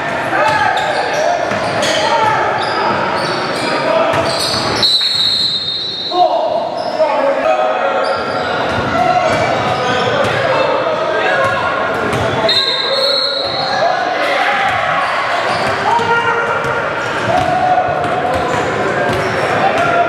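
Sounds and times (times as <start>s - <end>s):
referee's whistle: 4.3s - 6.4s, 12.4s - 13.8s.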